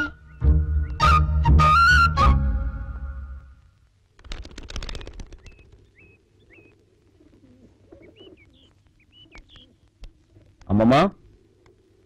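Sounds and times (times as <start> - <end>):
birds chirping: 0.0 - 2.7, 4.5 - 12.0.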